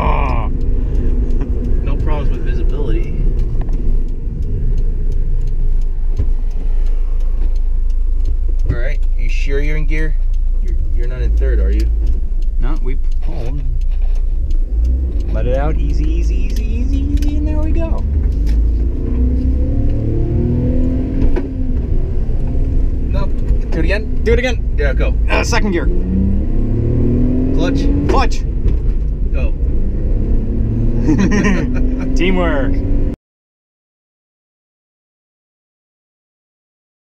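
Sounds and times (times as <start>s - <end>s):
engine running at low speed: 0.0s - 33.2s
road noise: 0.0s - 33.2s.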